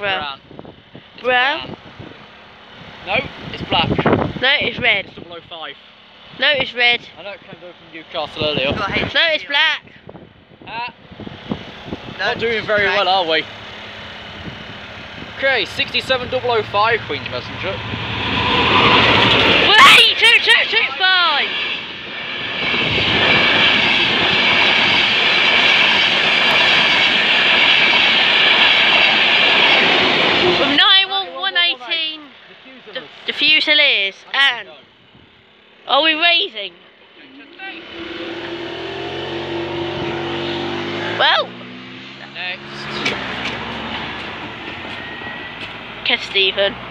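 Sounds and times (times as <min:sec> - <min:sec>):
train passing at speed: 0:16.0 - 0:32.1, 0:42.6 - 0:46.9.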